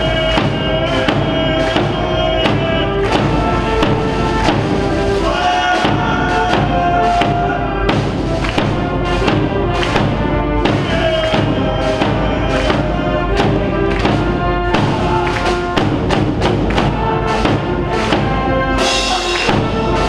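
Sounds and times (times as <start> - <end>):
bass drum beat: 0.0 - 20.0
brass band playing: 0.0 - 20.0.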